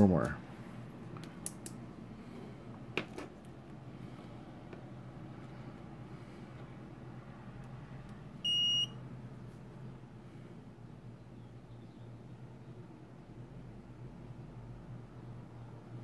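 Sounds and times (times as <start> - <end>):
short high beep from buzzer: 8.5 - 9.0.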